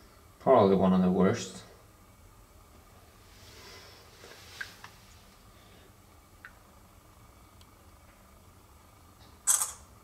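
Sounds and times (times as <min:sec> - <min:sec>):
camera shutter snap: 0:09.4 - 0:09.9.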